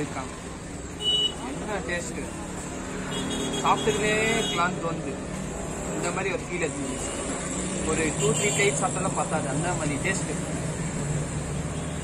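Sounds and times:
vehicles passing by: 0.0 - 12.0.

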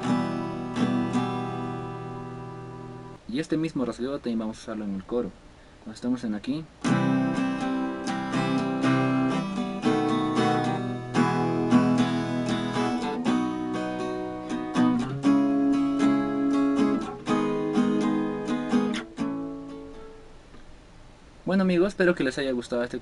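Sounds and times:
acoustic guitar strumming: 0.0 - 3.2, 6.8 - 20.4.

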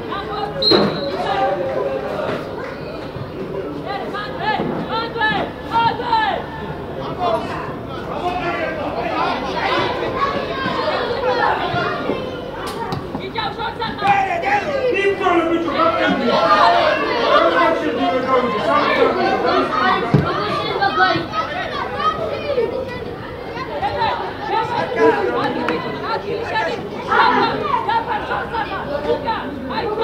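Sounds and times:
voices chattering: 0.0 - 30.0.

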